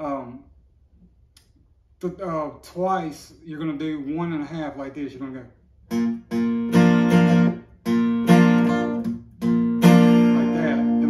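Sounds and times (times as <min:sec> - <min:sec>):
acoustic guitar strumming: 0:05.9 - 0:11.0.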